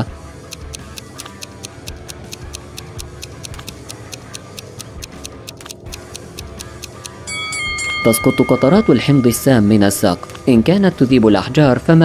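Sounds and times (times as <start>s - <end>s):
countdown timer ticking: 0.0s - 11.4s
soft background music: 0.0s - 12.0s
ringing chime: 7.1s - 11.6s.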